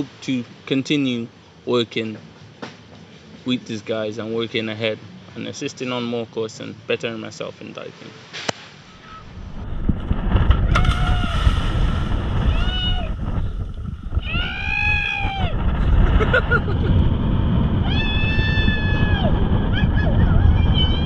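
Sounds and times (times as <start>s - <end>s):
wind buffeting microphone: 9.0s - 21.0s.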